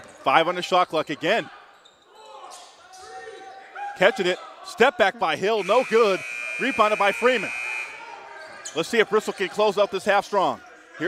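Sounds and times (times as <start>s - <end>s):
echoing voices and calls: 5.4s - 9.8s.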